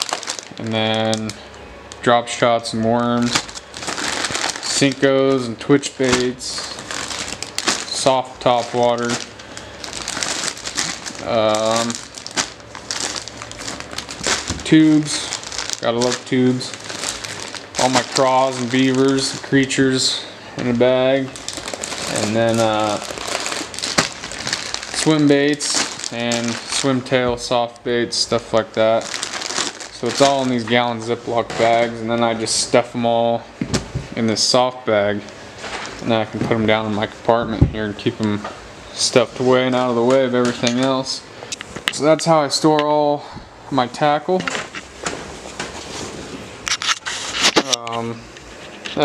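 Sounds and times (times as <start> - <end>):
plastic bags crinkling: 0.0 - 33.3, 34.3 - 37.2, 37.9 - 41.2
rustling handling noise: 0.0 - 43.1, 43.8 - 49.0.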